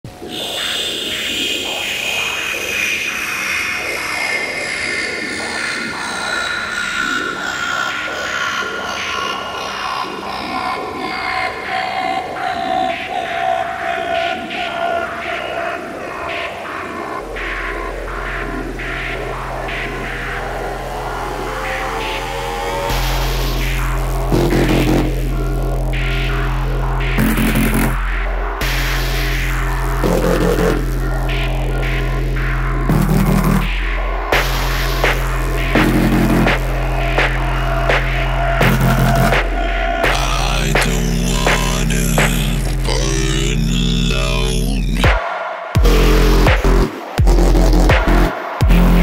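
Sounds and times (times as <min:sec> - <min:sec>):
deep bass drone: 0:08.0 - 0:45.2, 0:45.8 - 0:49.0
high synth tones sweeping downward: 0:10.4 - 0:26.4, 0:30.0 - 0:43.6.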